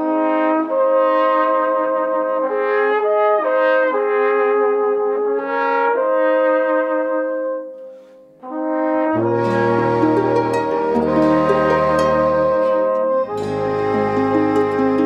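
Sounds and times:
folk instrumental slow chords: 7.8 - 15.0.

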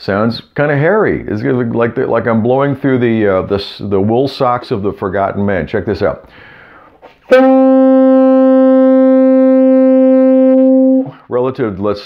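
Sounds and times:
tenor saxophone long note: 7.3 - 11.2.

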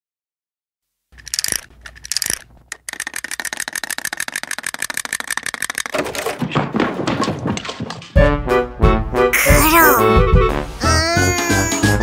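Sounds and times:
clockwork clicking: 1.2 - 6.0
wind-up toy winding: 1.2 - 6.0.

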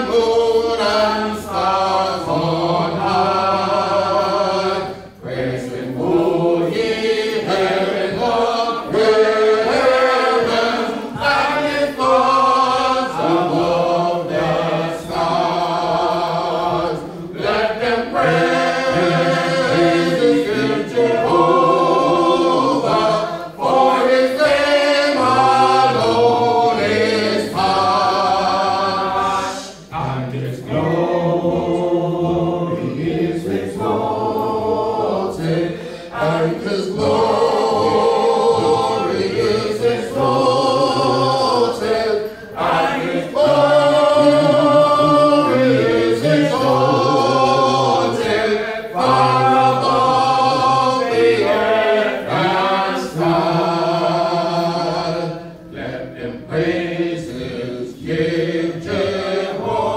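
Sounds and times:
voices singing a hymn: 0.0 - 59.9.

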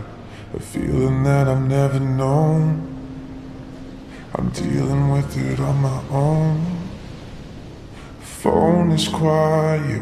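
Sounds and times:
man singing long low note: 0.0 - 3.1, 4.2 - 7.2, 8.1 - 10.0.

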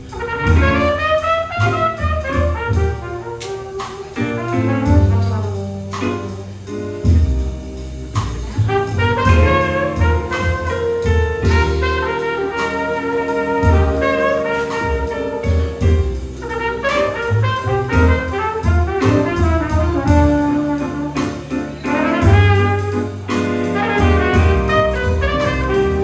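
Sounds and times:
trumpet solo: 0.0 - 6.0, 8.7 - 26.0
jazz band playing: 0.0 - 26.0.

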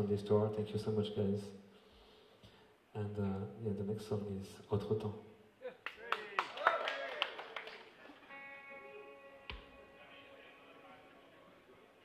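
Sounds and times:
audience clapping and cheering: 5.8 - 8.2
electric guitar chord ringing: 8.2 - 11.6.

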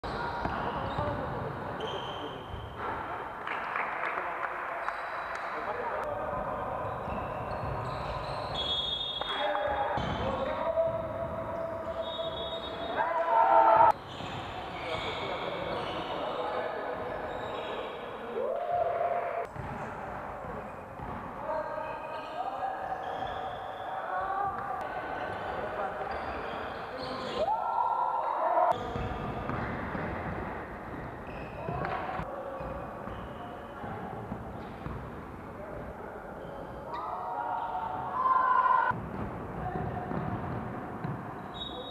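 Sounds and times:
players' voices and shouts: 9.2 - 14.0, 21.4 - 28.8, 36.6 - 39.0
ball bouncing on gym floor: 28.7 - 32.8, 38.9 - 41.3.

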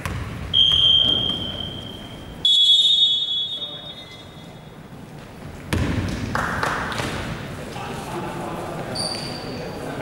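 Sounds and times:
referee's whistle blasts: 0.5 - 4.6.

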